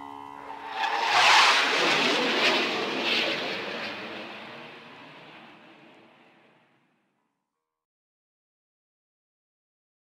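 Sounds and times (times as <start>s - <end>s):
airplane passing overhead: 0.0s - 6.8s.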